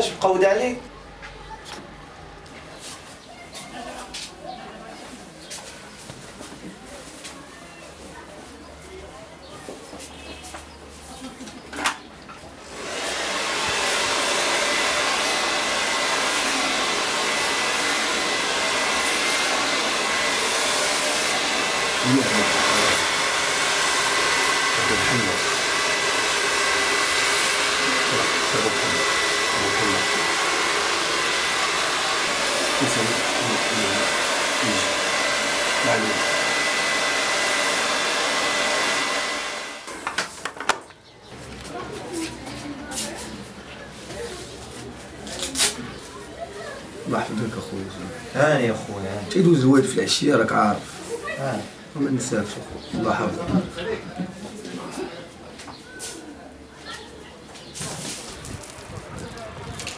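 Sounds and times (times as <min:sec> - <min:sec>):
hair dryer blowing with whine: 0:12.6 - 0:40.1.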